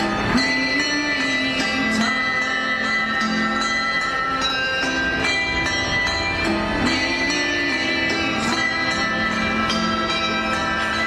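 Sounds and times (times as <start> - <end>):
handbells ringing a tune: 0.0 - 11.0.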